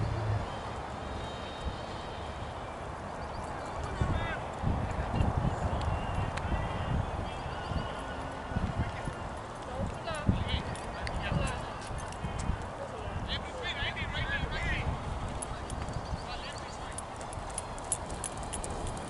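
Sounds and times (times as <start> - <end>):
wind buffeting microphone: 0.0 - 19.0
faint distant voices: 3.1 - 19.0.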